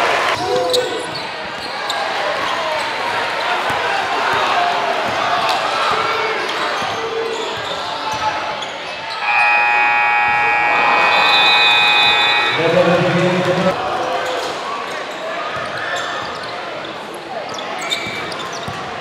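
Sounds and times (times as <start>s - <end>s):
crowd noise: 8.9s - 15.2s
scoreboard horn: 9.2s - 13.8s
short lower tone: 9.2s - 13.8s.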